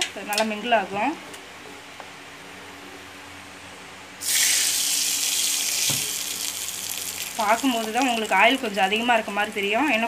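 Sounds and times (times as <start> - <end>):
hot oil sizzling: 4.2 - 10.0.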